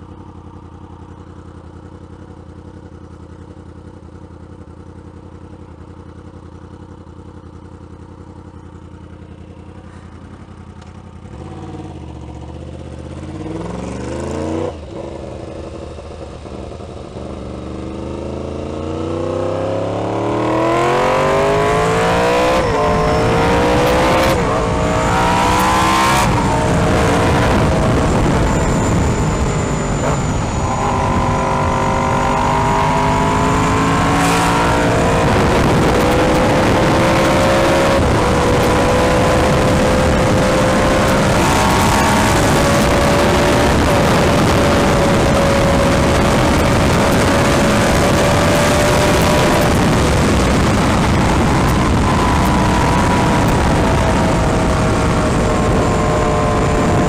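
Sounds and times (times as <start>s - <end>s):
motorcycle engine idling and accelerating: 0.0s - 57.0s.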